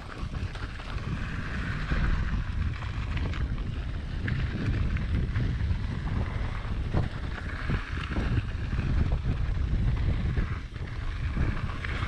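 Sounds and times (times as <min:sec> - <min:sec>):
bike tyres rolling on gravel: 0:00.0 - 0:12.0
wind buffeting microphone: 0:00.0 - 0:12.0.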